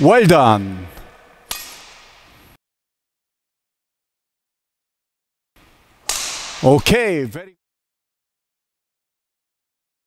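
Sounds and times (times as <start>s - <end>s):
racket striking shuttlecock: 1.0s - 2.3s, 6.0s - 6.6s.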